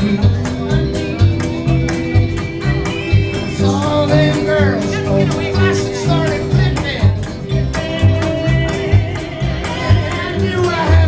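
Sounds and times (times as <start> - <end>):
acoustic guitars strumming: 0.0 - 11.0
drums: 0.0 - 11.0
upright bass: 0.0 - 11.0.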